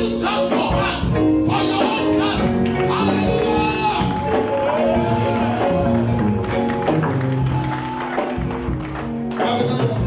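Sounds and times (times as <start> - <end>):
live worship band music: 0.0 - 10.0.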